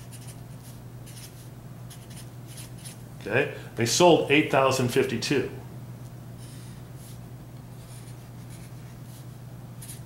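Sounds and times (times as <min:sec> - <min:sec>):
marker scratching on paper: 0:00.0 - 0:03.0, 0:07.8 - 0:10.0
steady low hum: 0:00.0 - 0:10.0.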